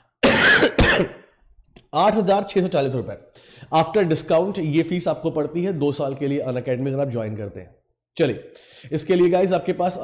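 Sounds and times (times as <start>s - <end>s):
man coughing: 0.2s - 1.3s.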